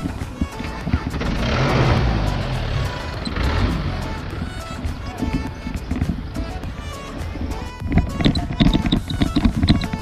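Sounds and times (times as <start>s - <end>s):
background music: 0.0s - 10.0s
bicycle road noise: 0.0s - 10.0s
traffic rushing: 0.0s - 10.0s.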